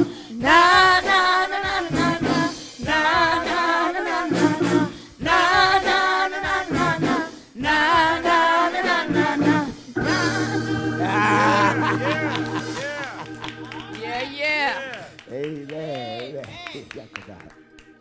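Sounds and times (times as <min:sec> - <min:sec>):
gospel singing voices: 0:00.0 - 0:18.0.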